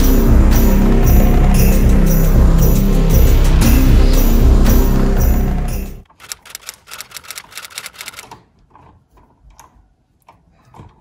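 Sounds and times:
sharp clicks: 6.1s - 8.4s.

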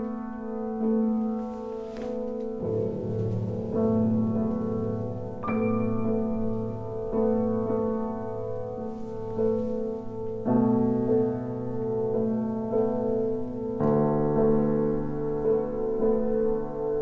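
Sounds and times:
slow piano chords: 0.0s - 17.0s.

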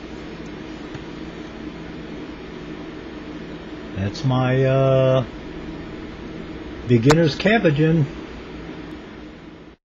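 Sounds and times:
faint low hum: 0.0s - 9.8s
background hiss: 2.5s - 9.4s.

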